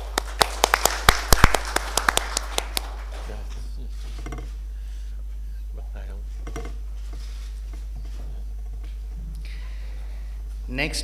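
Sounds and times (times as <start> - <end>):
small audience applause: 0.0 - 3.5.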